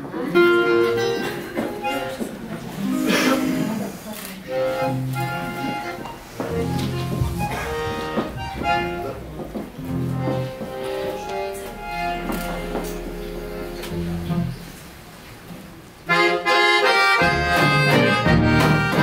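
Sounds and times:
accordion melody: 0:00.0 - 0:15.0, 0:16.0 - 0:19.0
acoustic guitar: 0:17.1 - 0:19.0.

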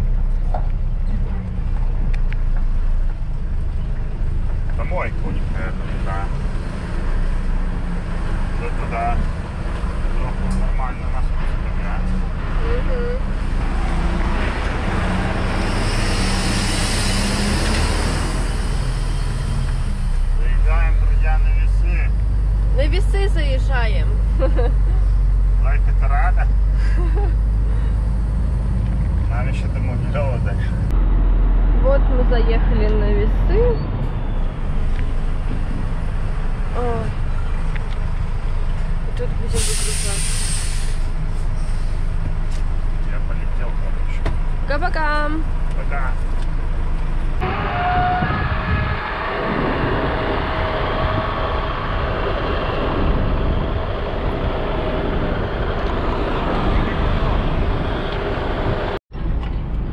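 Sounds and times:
truck diesel engine running: 0:00.0 - 0:59.0
air brakes hiss: 0:39.5 - 0:42.0.

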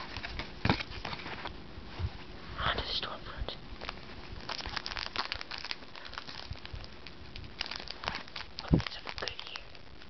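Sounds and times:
foil wrapper crinkling and tearing: 0:03.8 - 0:10.0.

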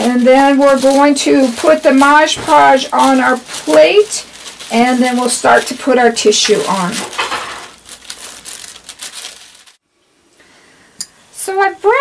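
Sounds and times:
paper crinkling and rustling: 0:00.0 - 0:09.8
scissors cutting tissue paper: 0:00.0 - 0:09.8.

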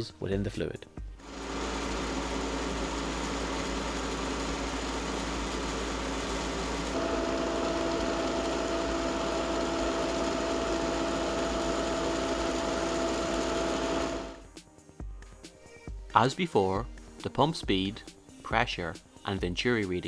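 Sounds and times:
pump motor hum: 0:01.2 - 0:14.4.

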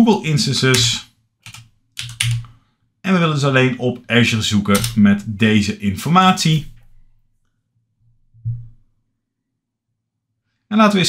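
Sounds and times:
computer keyboard keystrokes: 0:00.8 - 0:02.5, 0:04.7 - 0:05.3.

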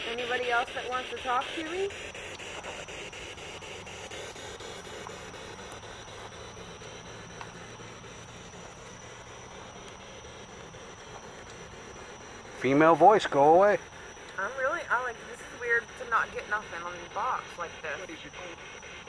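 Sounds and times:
quick regular clicks: 0:00.0 - 0:19.0
radio static hiss: 0:00.0 - 0:19.0.

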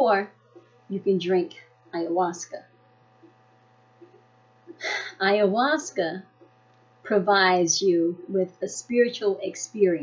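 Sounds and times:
woman talking: 0:00.0 - 0:00.3, 0:00.9 - 0:02.8, 0:04.7 - 0:06.4, 0:07.1 - 0:10.0
low electrical hum: 0:00.0 - 0:10.0.

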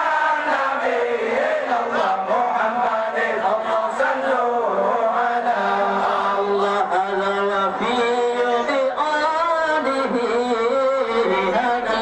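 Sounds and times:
men chanting in unison: 0:00.0 - 0:12.0.

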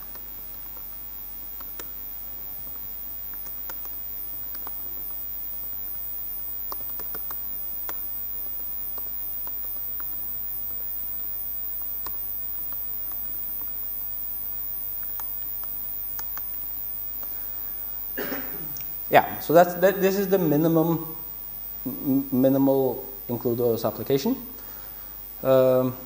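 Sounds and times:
laptop keyboard typing: 0:00.0 - 0:24.2
mains hum: 0:00.0 - 0:26.0.

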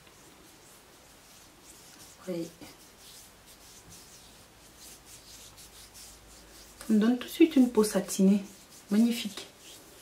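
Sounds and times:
fingers rubbing skin: 0:00.0 - 0:10.0.

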